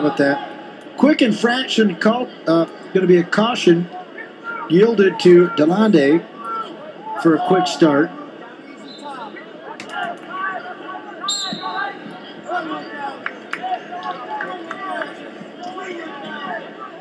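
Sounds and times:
crowd voices chattering: 0.0s - 17.0s.

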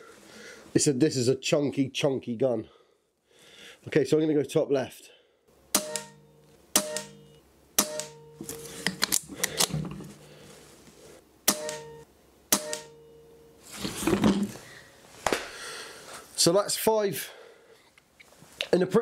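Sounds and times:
air rifle shots: 5.7s - 6.2s, 6.8s - 7.2s, 7.8s - 8.2s, 11.5s - 11.9s
pellet strikes: 5.7s - 6.2s, 6.8s - 8.4s, 11.5s - 13.0s.

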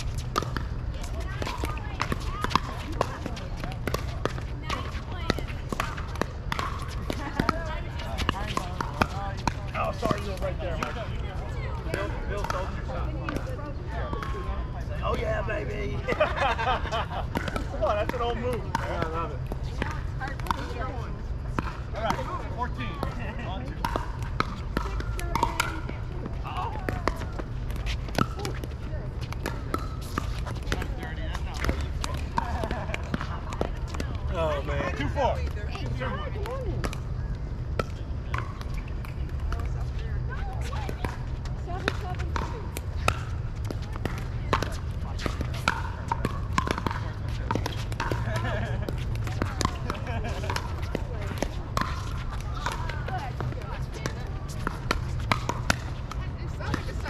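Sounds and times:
voices talking: 0.0s - 57.0s
paddles striking plastic ball: 41.8s - 48.3s.

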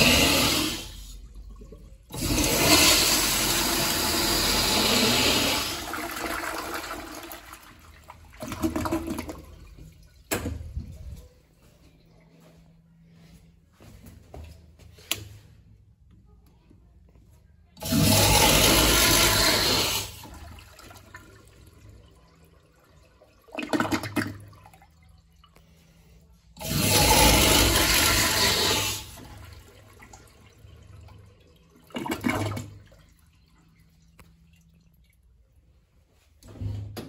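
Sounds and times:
toilet flushing: 0.0s - 10.9s, 17.8s - 37.0s.

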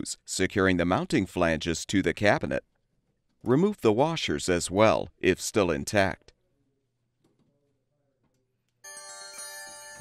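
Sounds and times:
chime of ringing tones: 8.8s - 10.0s.

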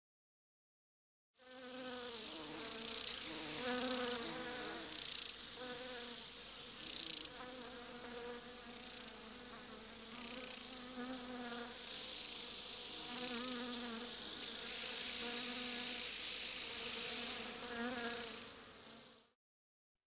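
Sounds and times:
insect-like buzzing: 1.4s - 19.4s
high hiss: 2.0s - 19.3s.

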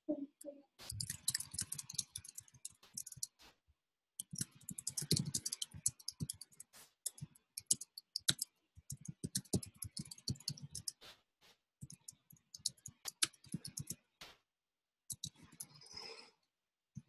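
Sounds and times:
computer keyboard typing: 0.8s - 3.4s, 4.2s - 11.0s, 11.8s - 14.0s.

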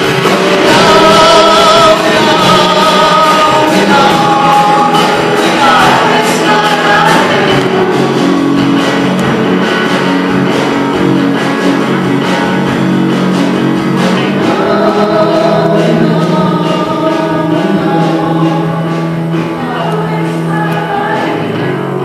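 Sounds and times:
two women singing: 0.0s - 8.4s, 14.2s - 22.0s
electric bass: 0.0s - 22.0s
strummed acoustic guitar: 0.0s - 22.0s.

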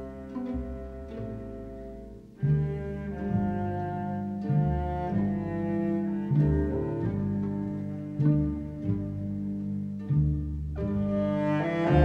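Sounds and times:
folk instrumental music with strings: 0.0s - 12.0s.

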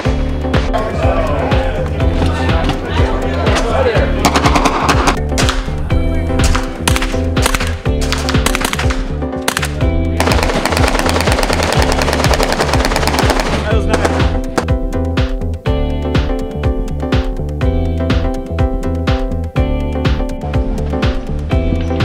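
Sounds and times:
background music: 0.0s - 22.0s
suppressed rifle gunfire: 6.4s - 14.2s.

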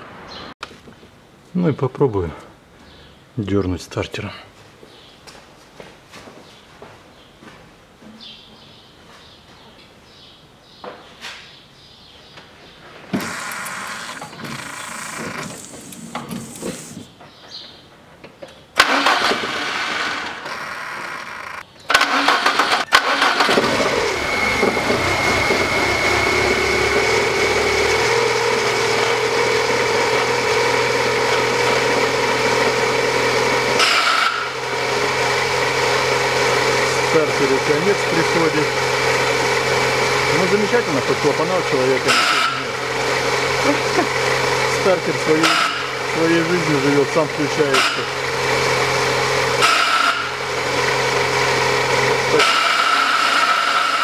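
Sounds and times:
car engine starting and idling: 13.2s - 17.1s, 18.8s - 54.0s.

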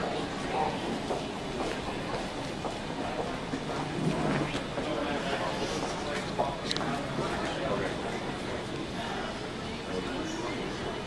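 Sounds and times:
busy terminal hall noise: 0.0s - 11.0s
faint murmuring voices: 0.0s - 11.0s.

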